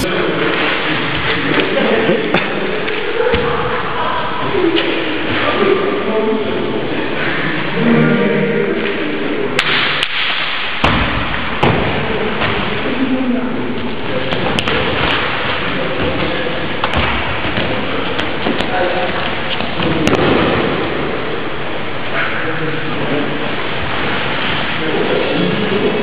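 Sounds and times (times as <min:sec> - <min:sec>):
noisy background: 0:00.0 - 0:26.0.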